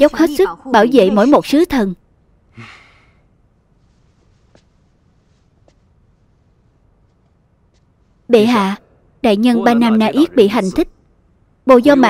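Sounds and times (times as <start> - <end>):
soft breathy exhale: 2.5 - 3.2.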